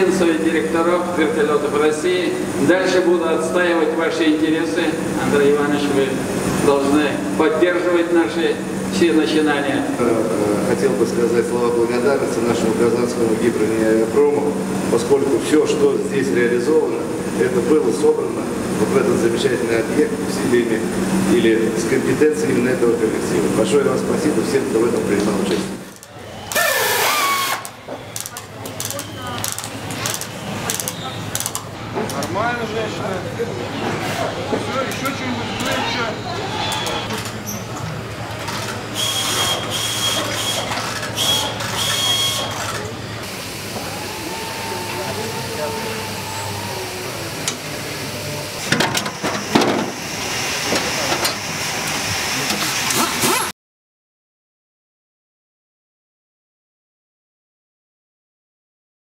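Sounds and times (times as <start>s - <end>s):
steady hall hum: 0.0s - 53.0s
cordless drill motor whirring: 26.5s - 29.0s.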